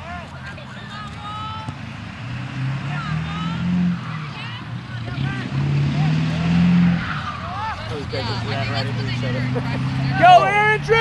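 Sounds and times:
faint shouting voices: 0.0s - 11.0s
vehicle engine accelerating: 0.3s - 11.0s.

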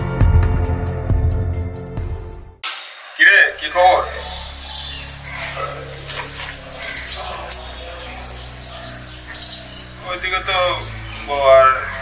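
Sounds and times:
bird chirping: 3.0s - 12.0s.

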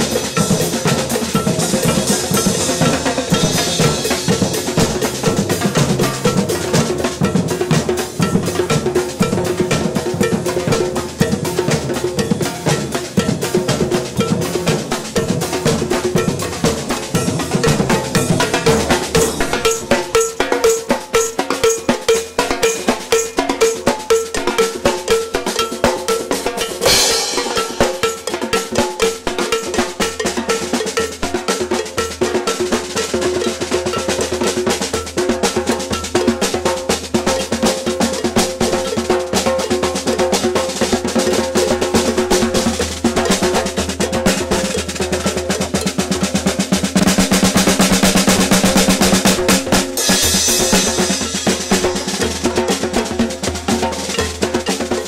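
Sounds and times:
percussion band drumming: 0.0s - 55.0s
cymbal crash: 26.8s - 28.1s, 50.0s - 52.3s.

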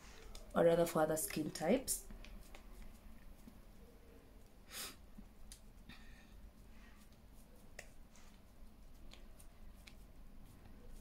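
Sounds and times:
fingertips patting skin: 2.1s - 3.7s, 5.1s - 11.0s.

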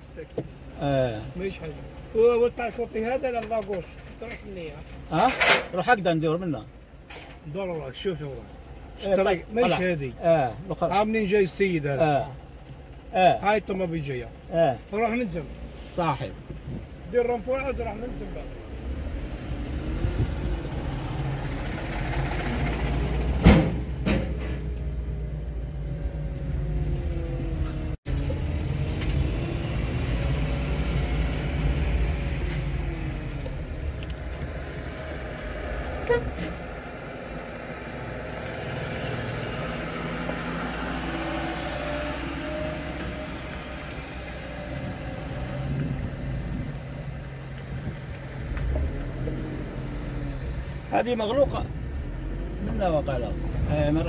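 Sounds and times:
car engine and road noise: 0.0s - 54.0s
sharp knocks: 23.4s - 24.6s.

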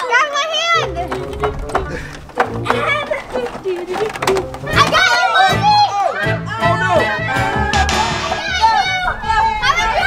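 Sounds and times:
children calling out in play: 0.0s - 1.1s, 4.6s - 7.8s
background music with beat: 6.3s - 9.1s.

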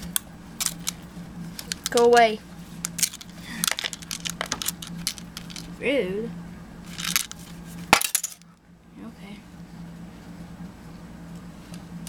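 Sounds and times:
steady low hum: 0.0s - 12.0s
small hard objects clattering: 3.0s - 5.7s.

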